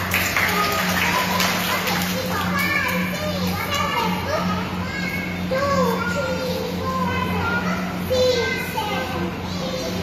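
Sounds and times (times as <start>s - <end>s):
children chattering and calling out: 0.0s - 10.0s
steady low hum: 0.0s - 10.0s.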